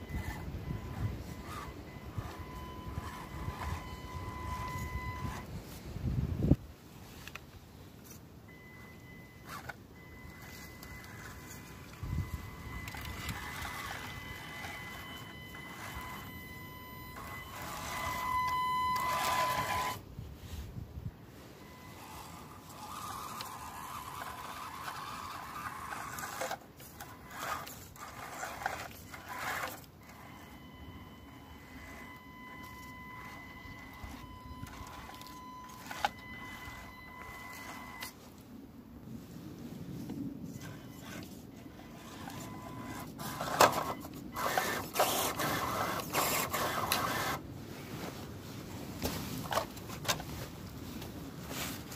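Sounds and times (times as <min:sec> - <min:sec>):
electric motor and gear whine: 0:00.0 - 0:06.6, 0:08.0 - 0:20.1, 0:21.4 - 0:38.4, 0:40.5 - 0:47.4.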